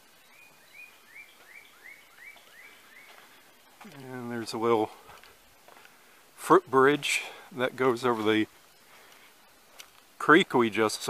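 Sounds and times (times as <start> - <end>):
songbird whistling rising notes: 0.0 - 3.5.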